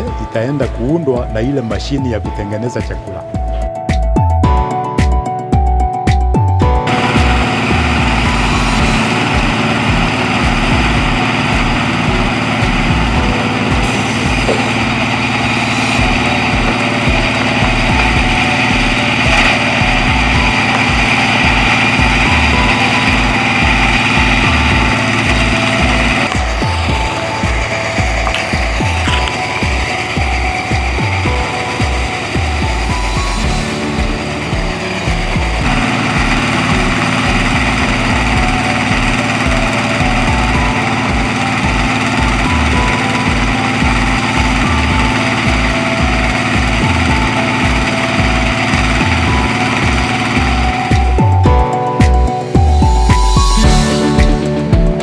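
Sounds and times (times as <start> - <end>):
small engine running chopper: 6.8 - 51.7.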